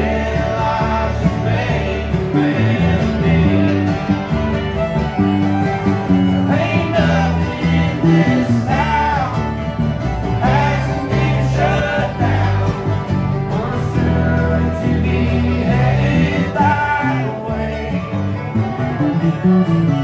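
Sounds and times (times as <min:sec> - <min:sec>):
acoustic guitar: 0:00.0 - 0:20.0
bass notes: 0:00.0 - 0:20.0
fiddle: 0:00.0 - 0:20.0
mandolin: 0:00.0 - 0:20.0.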